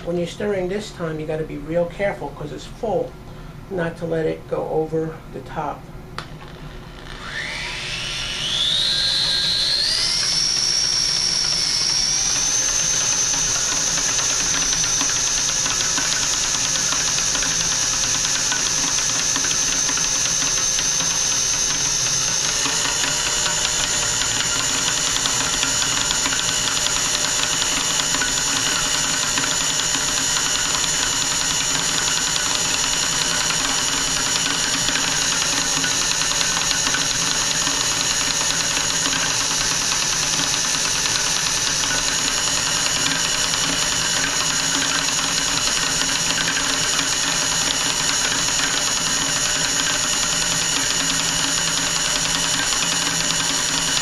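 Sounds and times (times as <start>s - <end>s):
electric drill whining: 6.2s - 54.0s.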